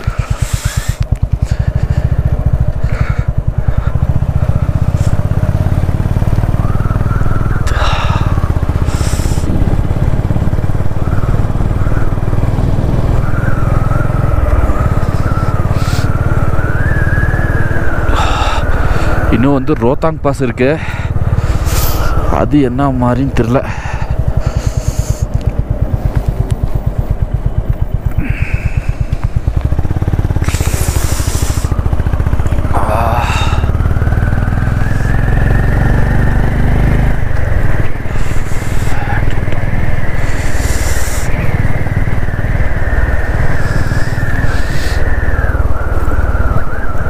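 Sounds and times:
motorcycle engine running: 0.0 - 47.0
steady high whine: 0.0 - 47.0
wind on microphone: 37.2 - 47.0.

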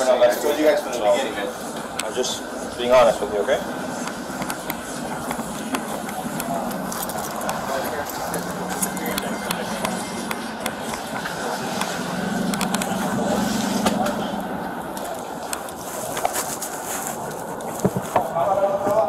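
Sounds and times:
indistinct voices: 0.0 - 19.0.

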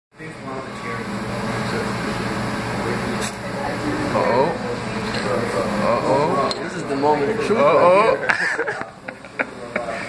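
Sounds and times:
robot arm servo motors humming: 0.3 - 8.2.

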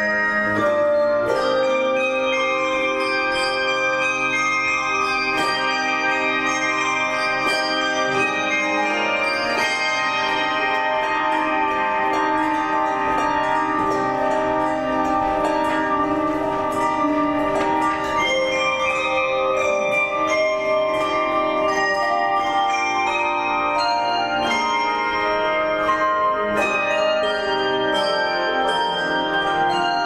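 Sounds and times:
handbell choir ringing: 0.0 - 30.0.

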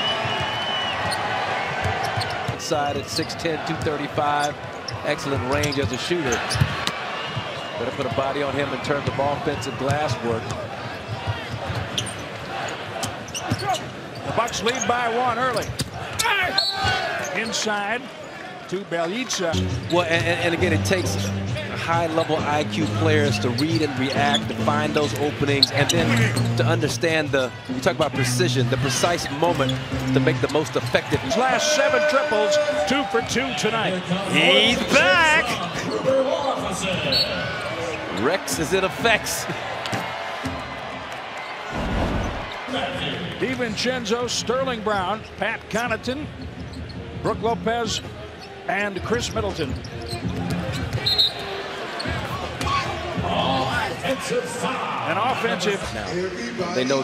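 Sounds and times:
arena crowd noise: 0.0 - 57.0.

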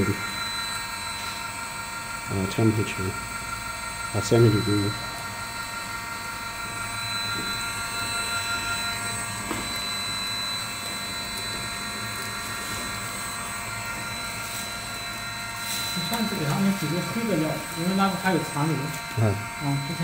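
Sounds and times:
extruder motor hum: 0.0 - 20.0
high steady whines: 0.0 - 20.0.

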